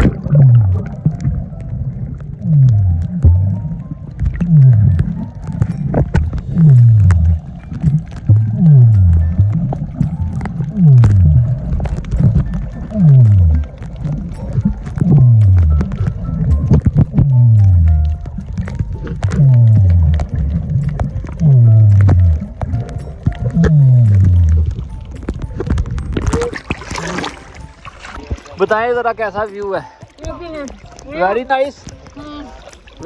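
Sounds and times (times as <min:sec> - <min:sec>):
low moaning tones underwater: 0:00.0 - 0:28.5
crackling clicks underwater: 0:00.0 - 0:33.0.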